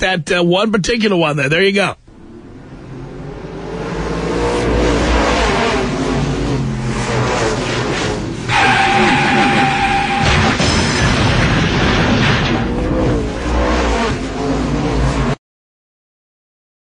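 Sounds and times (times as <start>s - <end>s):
steady higher tone: 2.0s - 5.0s
race car engines: 2.0s - 15.4s.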